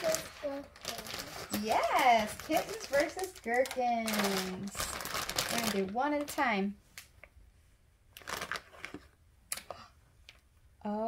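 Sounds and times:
plastic packaging crinkling and tearing: 0.0 - 6.5, 8.2 - 9.1.

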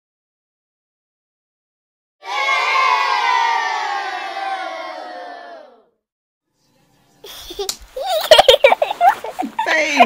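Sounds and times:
crowd cheering: 2.2 - 5.9.

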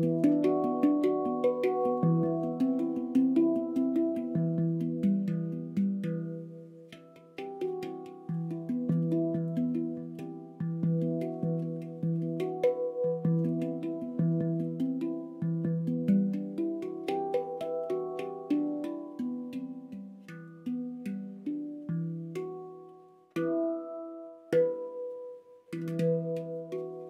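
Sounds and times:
handpan played by hand: 0.0 - 27.0.

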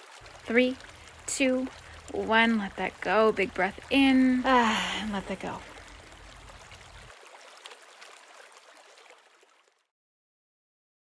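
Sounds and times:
small waterfall splashing: 0.0 - 9.9.

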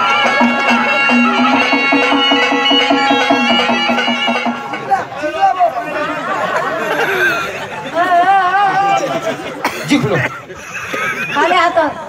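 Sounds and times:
folk music with drone and beat: 0.0 - 5.3.

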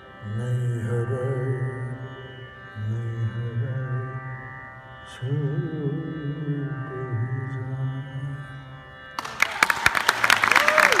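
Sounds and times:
man singing a low note: 0.2 - 4.4
audience applause: 9.2 - 11.0.

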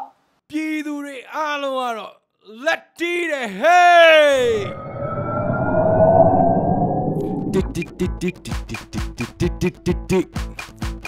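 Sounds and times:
loud rushing noise: 4.5 - 9.1
music with plucked guitar beat: 8.4 - 11.0.

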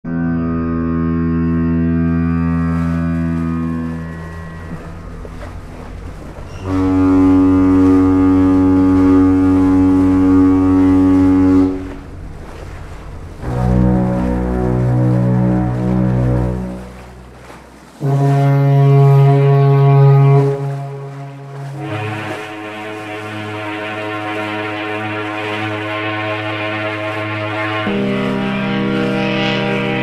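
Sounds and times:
fog horn blasts: 0.1 - 30.0.

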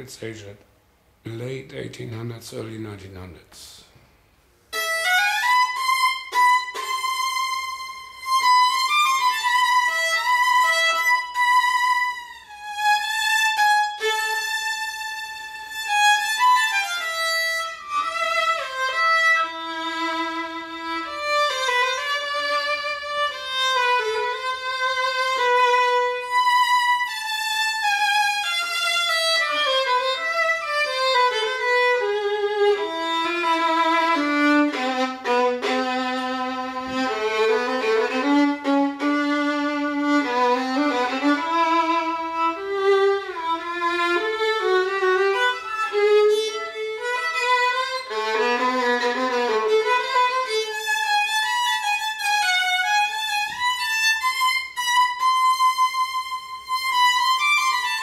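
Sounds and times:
solo violin melody with vibrato: 4.7 - 58.0.

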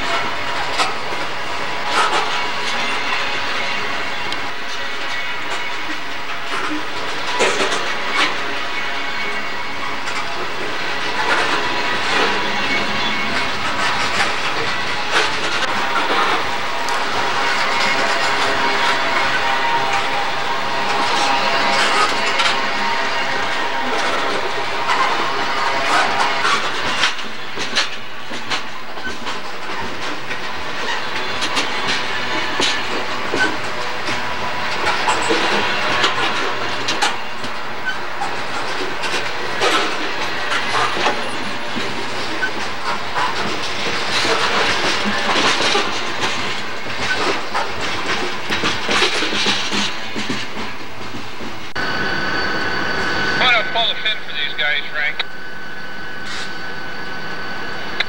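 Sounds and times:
freight train rolling past: 0.0 - 58.0
steel wheels clanking on rail: 0.0 - 58.0
steady high-pitched tones: 51.8 - 58.0.

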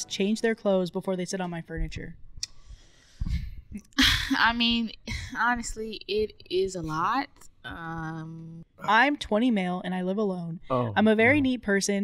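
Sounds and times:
breath into close microphone: 2.5 - 3.7.

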